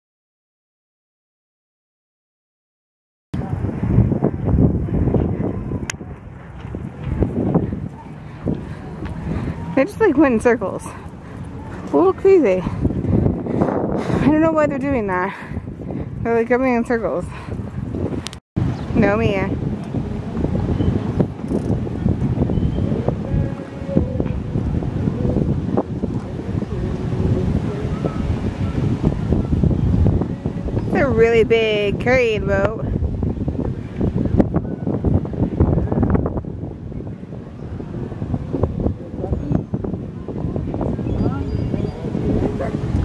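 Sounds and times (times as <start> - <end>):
wind buffeting microphone: 3.4 - 43.0.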